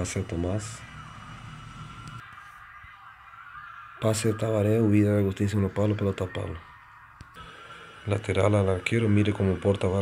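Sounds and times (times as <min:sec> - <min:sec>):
low hum: 0:00.0 - 0:03.8.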